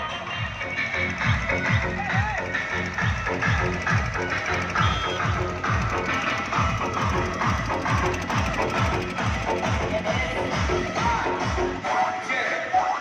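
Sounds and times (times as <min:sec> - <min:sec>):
dance remix over horn loudspeaker: 0:00.0 - 0:08.2, 0:09.2 - 0:13.0.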